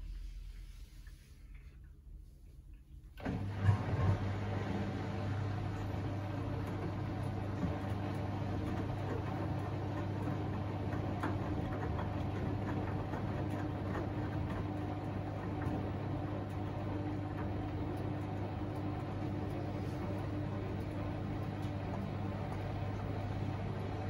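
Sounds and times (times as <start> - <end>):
washing machine motor hum: 0.0 - 24.0.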